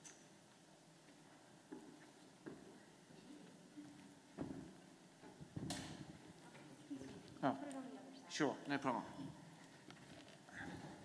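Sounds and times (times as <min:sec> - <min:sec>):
soft footsteps: 0:00.0 - 0:07.4.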